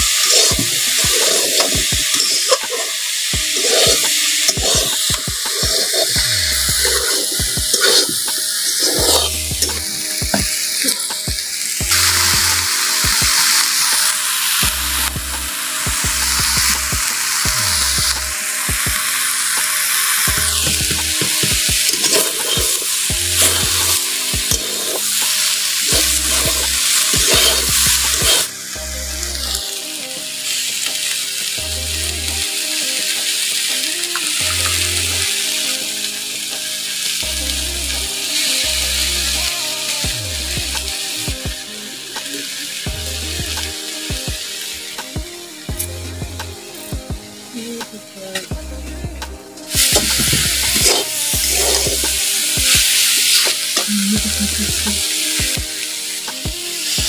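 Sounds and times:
banana chunks sizzling in pan: 0:00.0 - 0:48.5, 0:49.4 - 0:57.0
metal spatula scraping pan: 0:00.1 - 0:10.2, 0:19.2 - 0:28.5.

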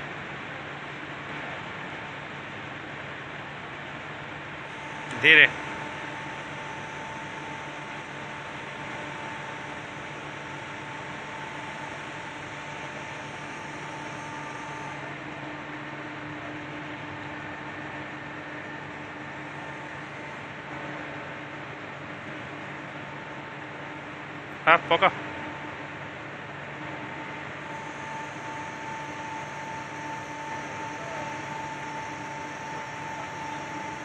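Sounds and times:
hydraulic pump motor humming: 0:04.7 - 0:21.0, 0:27.0 - 0:34.0.

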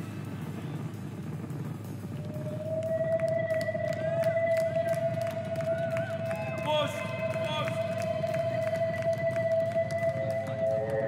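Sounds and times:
low rumbling drone: 0:00.0 - 0:11.0
steady synthesizer tone: 0:00.0 - 0:11.0.

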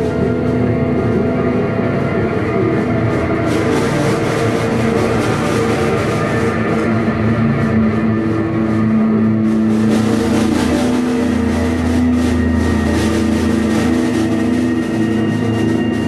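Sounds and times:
amplified guitar and bass tones: 0:00.0 - 0:16.0
rock band playing psychedelic jam: 0:00.0 - 0:16.0.

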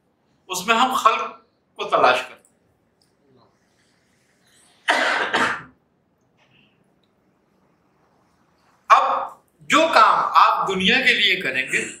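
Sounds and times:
man coughing: 0:04.8 - 0:05.8.

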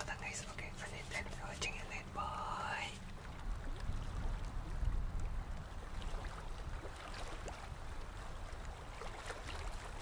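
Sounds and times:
man whispering: 0:00.0 - 0:03.0.

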